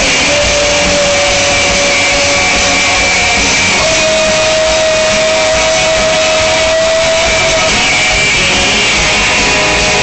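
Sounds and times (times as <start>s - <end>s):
rock band playing loud: 0.0s - 10.0s.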